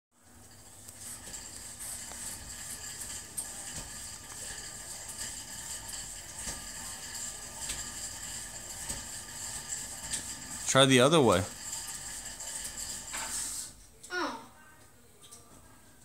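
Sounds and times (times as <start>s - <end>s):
exercise bike flywheel whirring: 0.2s - 13.8s.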